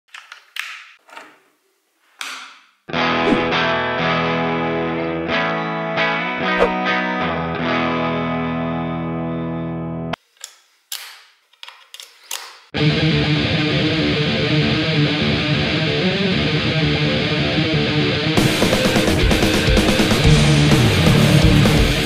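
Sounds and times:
electric guitar chord: 3.0 - 10.1, 12.8 - 22.0.

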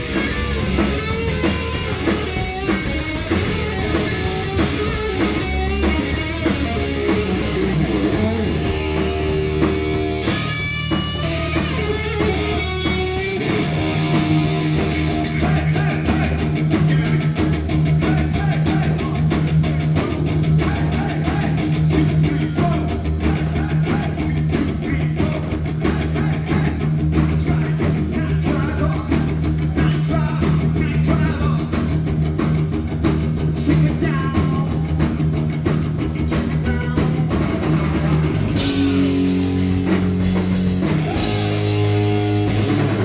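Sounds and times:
bass guitar: 0.0 - 43.0
distorted electric guitars: 0.0 - 43.0
drum kit: 0.0 - 43.0
lead vocal singing: 15.0 - 31.7.

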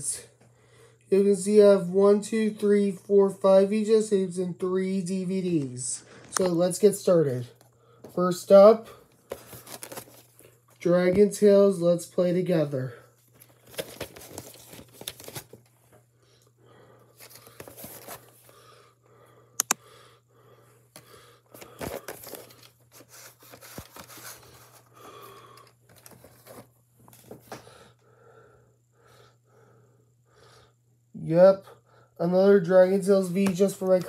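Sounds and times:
cardboard and plastic rustling: 9.1 - 10.8, 13.2 - 16.0, 17.2 - 18.6, 21.5 - 27.7, 33.2 - 34.0
sharp click: 19.6 - 19.8.

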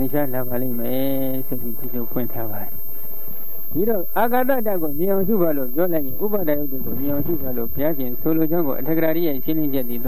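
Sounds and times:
man speaking: 0.0 - 2.8, 3.7 - 10.0.

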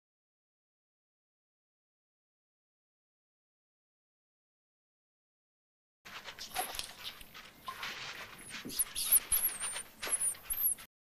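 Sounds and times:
high-pitched gliding squeaks: 6.4 - 10.9.

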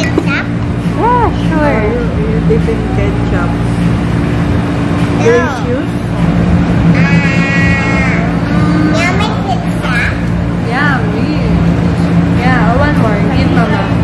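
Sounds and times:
steady low hum: 0.0 - 14.0.

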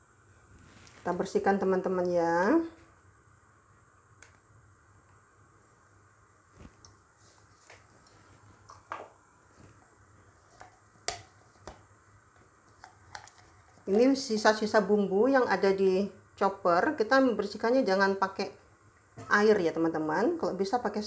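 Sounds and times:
faint steady hum: 0.0 - 21.0.

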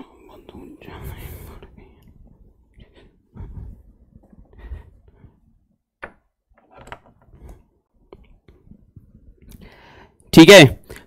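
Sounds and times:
man whispering: 0.0 - 1.8.

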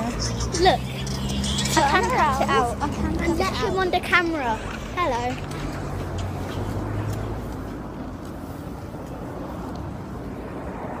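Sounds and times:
street rumble and hiss: 0.0 - 11.0.

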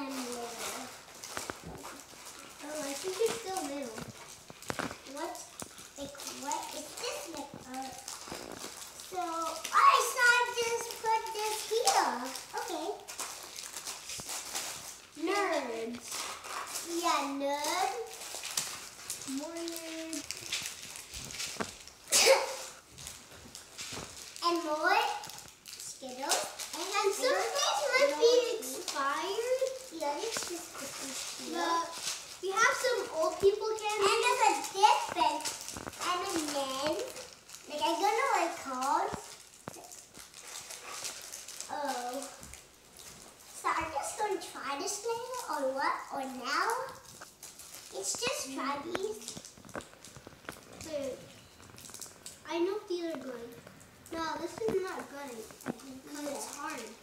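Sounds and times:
children talking: 0.0 - 1.1, 1.7 - 4.2, 5.0 - 8.2, 9.0 - 13.1, 15.2 - 16.1, 16.7 - 18.2, 19.2 - 20.4, 22.1 - 22.8, 24.4 - 40.0, 41.7 - 42.4, 43.6 - 47.1, 47.9 - 49.4, 50.8 - 51.3, 52.4 - 57.0
plastic wrappers crinkling: 0.0 - 57.0.

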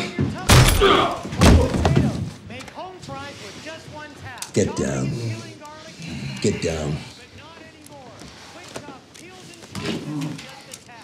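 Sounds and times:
man grunting and groaning: 0.7 - 1.3.

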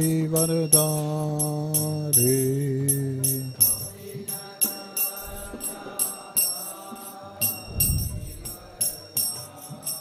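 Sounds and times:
small hand cymbals striking: 0.0 - 10.0
group singing call and response: 2.2 - 10.0.

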